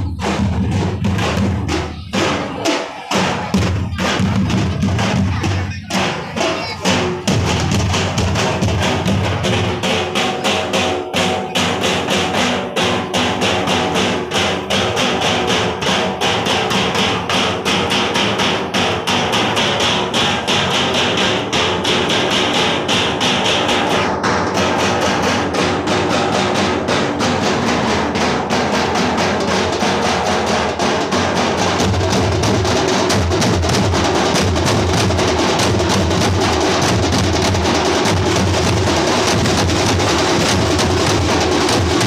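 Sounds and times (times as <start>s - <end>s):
drums beating fast rhythm: 0.0s - 42.0s.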